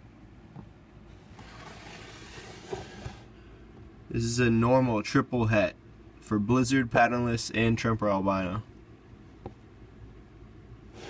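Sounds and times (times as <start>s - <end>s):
plastic tub scraping out: 1.3s - 3.3s.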